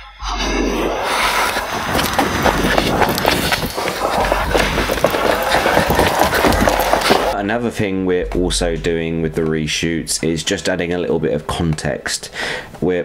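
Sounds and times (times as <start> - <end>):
rustling and crackling noise: 0.8 - 7.4.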